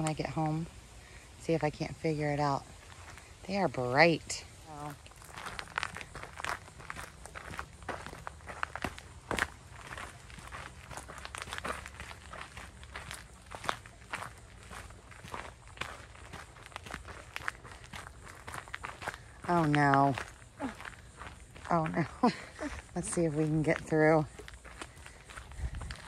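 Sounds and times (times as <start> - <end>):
footsteps crunching on gravel: 2.6 - 26.0.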